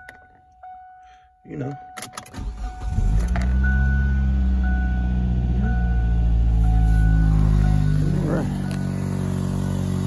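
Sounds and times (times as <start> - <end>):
car engine idling: 2.4 - 10.0.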